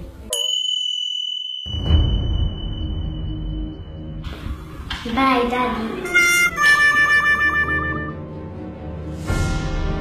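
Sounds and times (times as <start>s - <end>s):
low background music: 0.0s - 0.4s, 1.8s - 10.0s
high bell-like ding: 0.3s - 4.0s.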